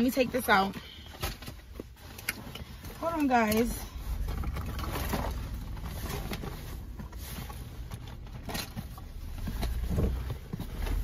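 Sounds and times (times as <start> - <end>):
hands rummaging in a canvas bag: 0.0 - 11.0.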